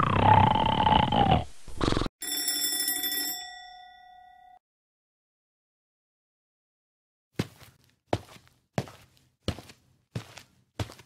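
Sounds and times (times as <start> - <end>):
alarm clock bell rattling: 2.2 - 4.6
single bell tone ringing: 2.2 - 4.6.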